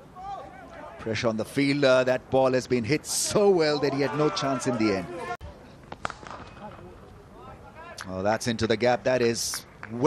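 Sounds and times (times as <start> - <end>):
faint stadium crowd noise: 0.0 - 10.0.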